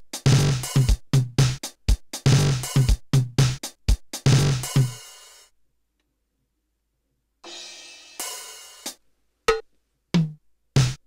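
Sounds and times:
drum machine cymbal hits: 0.0s - 5.5s, 7.4s - 9.6s.

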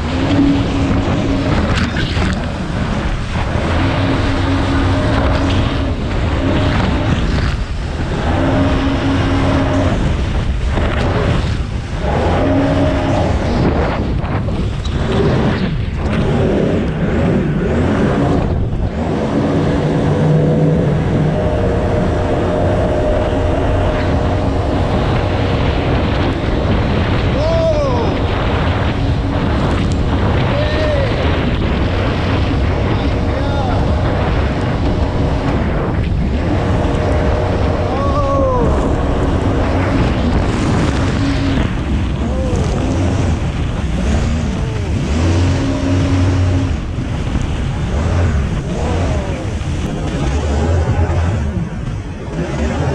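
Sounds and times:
water car engine running: 0.0s - 52.9s
water rushing past hull: 0.0s - 52.9s.

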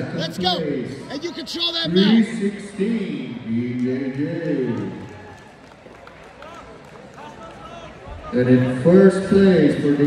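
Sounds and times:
man's voice: 0.0s - 4.9s
crowd murmur: 0.0s - 10.0s.

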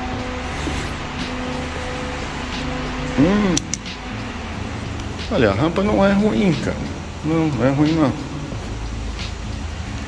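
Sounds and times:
low mechanical hum: 0.0s - 7.2s
background hiss: 0.0s - 10.0s.

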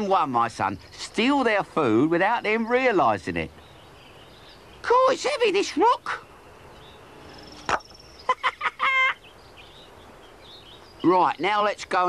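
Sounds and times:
faint outdoor background: 0.0s - 12.0s
hen squawk: 7.4s - 9.4s.

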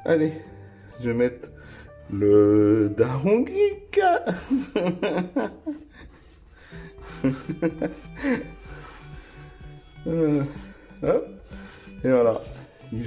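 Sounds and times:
background music: 0.0s - 13.0s
person speaking: 2.1s - 4.8s
laughter: 4.3s - 6.4s, 7.0s - 8.5s.

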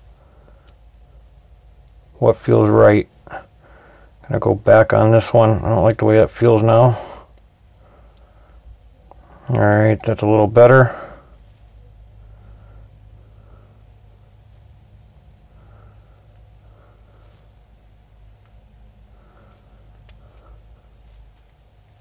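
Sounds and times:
faint breaths: 0.0s - 2.1s, 3.1s - 4.4s, 6.4s - 22.0s
low hum: 0.0s - 22.0s.

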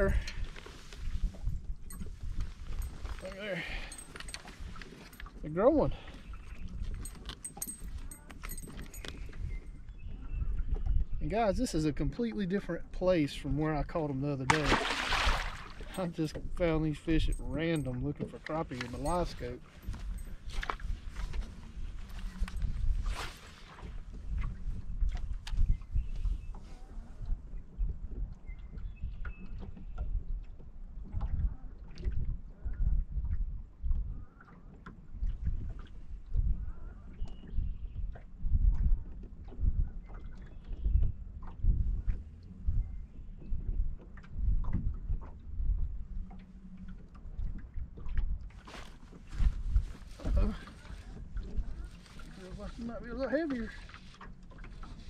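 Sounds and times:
wind buffeting microphone: 0.0s - 46.5s, 47.3s - 55.0s.

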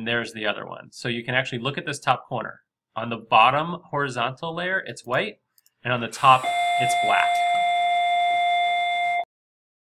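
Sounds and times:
electronic buzzer tone: 6.2s - 9.3s.

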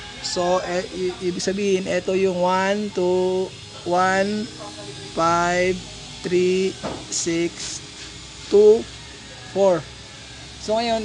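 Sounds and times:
man speaking: 0.2s - 7.8s, 9.6s - 9.9s, 10.6s - 11.0s.

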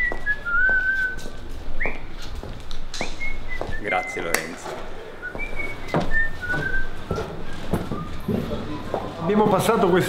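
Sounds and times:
person whistling a tune: 0.0s - 2.1s, 3.0s - 4.6s, 5.2s - 8.8s.

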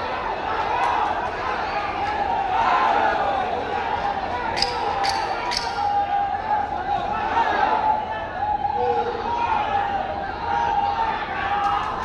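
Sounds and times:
murmur of crowd voices: 0.0s - 12.0s.

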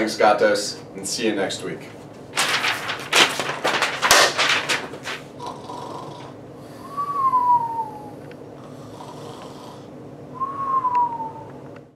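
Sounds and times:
person snoring: 5.4s - 7.2s, 8.0s - 9.9s
falling whistle through lips: 6.8s - 8.2s, 10.4s - 11.6s.

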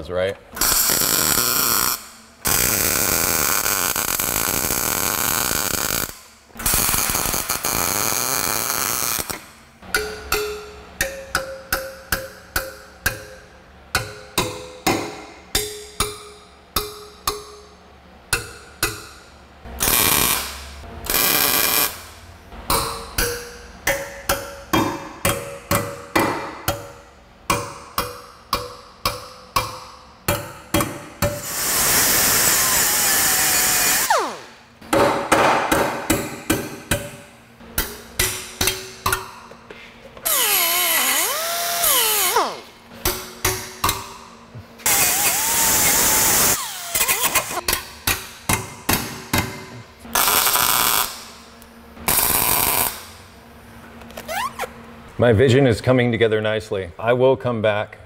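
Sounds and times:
arc welding: 0.6s - 9.6s, 19.7s - 22.2s, 31.4s - 34.6s, 40.3s - 42.6s, 44.9s - 47.6s, 50.1s - 51.4s, 52.0s - 53.3s
hammer ringing on steel: 9.9s - 17.7s.

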